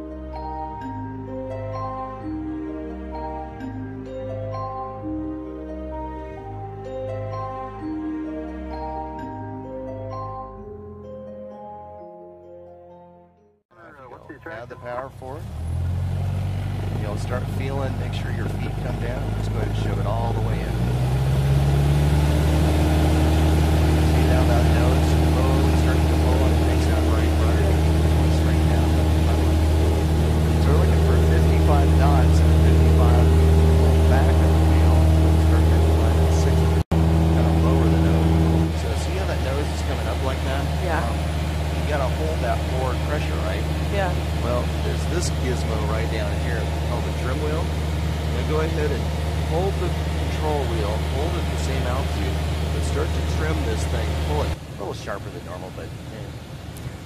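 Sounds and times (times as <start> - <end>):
airplane piston engine drone: 13.8 - 57.0.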